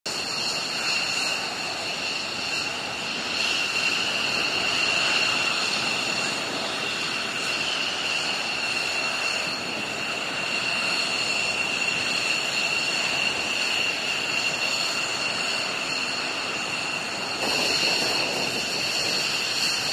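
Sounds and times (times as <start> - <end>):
jet engines idling: 0.1 - 19.9.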